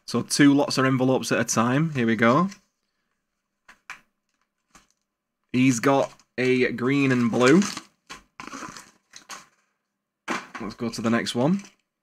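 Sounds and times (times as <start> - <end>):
cardboard and paper rustling: 6.0 - 9.7.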